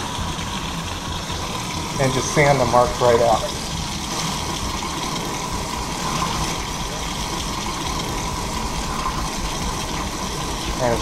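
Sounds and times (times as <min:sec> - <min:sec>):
tap water running into sink: 0:00.0 - 0:11.0.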